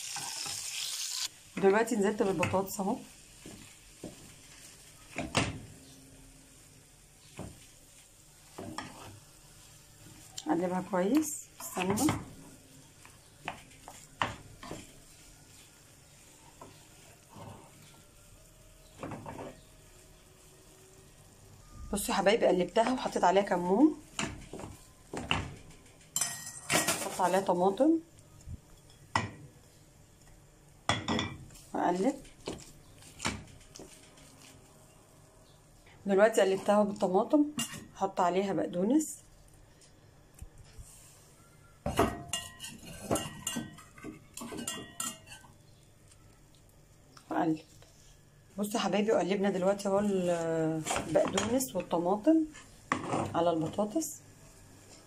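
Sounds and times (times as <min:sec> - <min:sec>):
wooden spoon against pan: 0:01.5 - 0:20.5, 0:22.0 - 0:27.8, 0:30.2 - 0:34.7, 0:35.8 - 0:38.0, 0:49.0 - 0:54.0
wooden spoon scraping a pan: 0:07.2 - 0:18.0, 0:42.3 - 0:45.6, 0:49.5 - 0:54.0
frying pan and utensils clattering: 0:24.2 - 0:27.4, 0:41.9 - 0:45.6.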